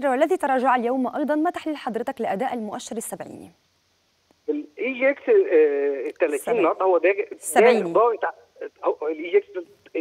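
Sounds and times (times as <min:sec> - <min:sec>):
man talking over telephone: 0:04.5 - 0:10.0.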